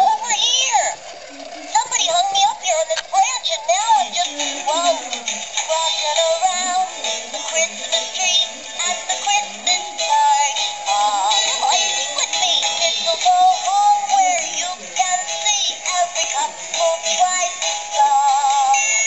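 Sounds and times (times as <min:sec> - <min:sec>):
thin electronic singing voice: 0:01.3 - 0:19.0.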